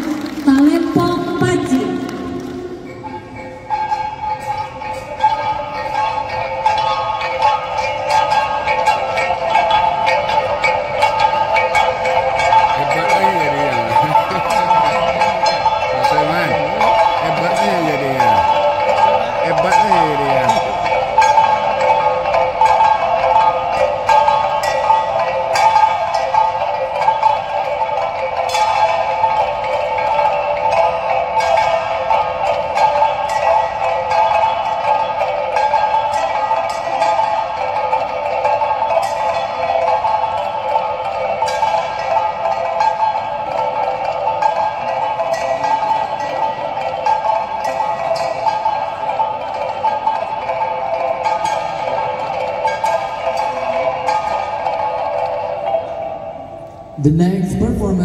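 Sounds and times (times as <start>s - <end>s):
small gongs struck rhythmically: 0.0s - 58.0s.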